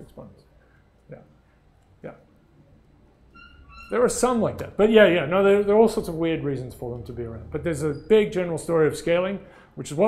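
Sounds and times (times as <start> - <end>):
man talking: 0.0 - 0.5, 2.0 - 2.3, 3.9 - 10.0
faint high squeak-like tone: 3.3 - 4.3, 7.6 - 8.6.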